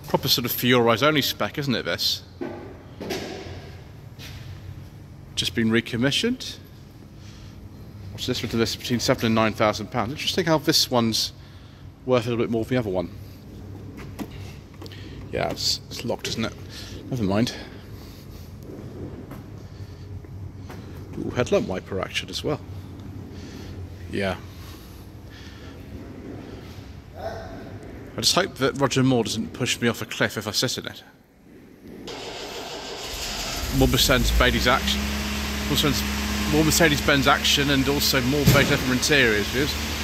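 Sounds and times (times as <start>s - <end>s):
low background hum: 0.0s - 39.8s
car engine running: 32.1s - 40.0s.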